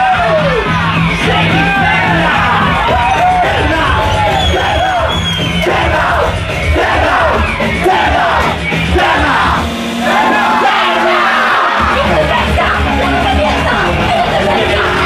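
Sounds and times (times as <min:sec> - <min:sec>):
crowd yelling: 0:00.0 - 0:15.0
loud live band music: 0:00.0 - 0:15.0
vocalist shouting: 0:09.0 - 0:15.0.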